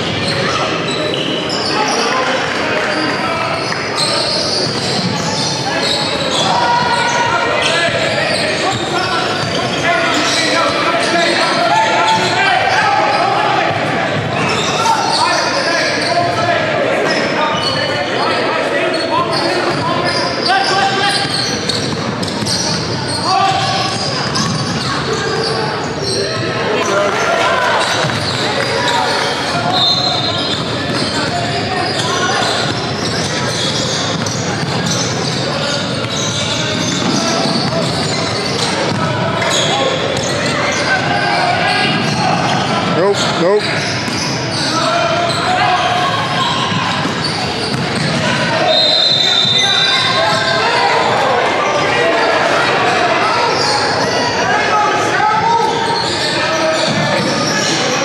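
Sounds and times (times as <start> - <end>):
chatter of many people: 0.0 - 58.0.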